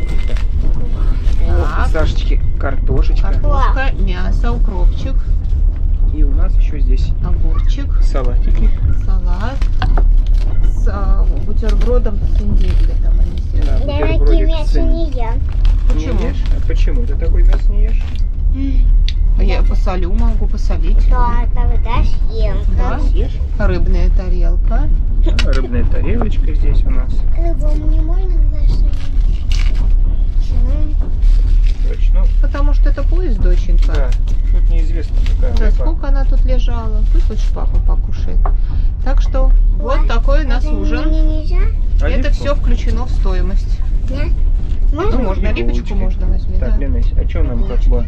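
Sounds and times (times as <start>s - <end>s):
train carriage rumble: 0.0s - 48.0s
person speaking: 12.4s - 17.3s, 20.8s - 23.9s, 25.2s - 27.8s, 39.8s - 41.4s.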